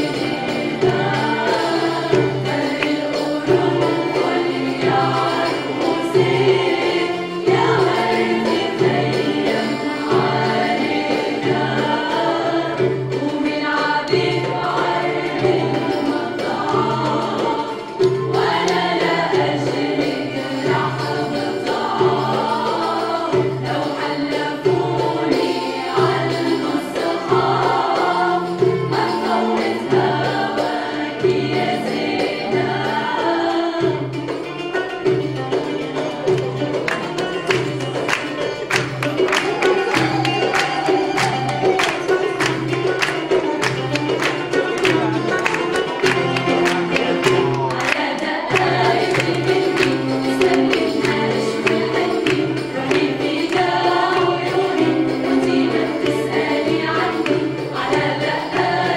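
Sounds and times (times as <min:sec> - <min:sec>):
strings and percussion ensemble: 0:00.0 - 0:58.9
women's choir singing: 0:00.0 - 0:58.9.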